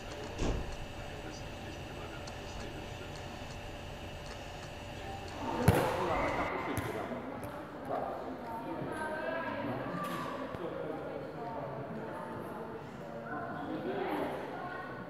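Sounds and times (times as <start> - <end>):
steady low hum: 0.0 - 6.5
people talking in a hall: 0.0 - 15.0.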